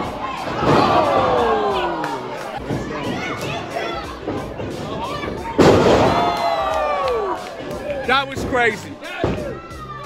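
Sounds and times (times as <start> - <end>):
crowd shouting: 0.0 - 2.3.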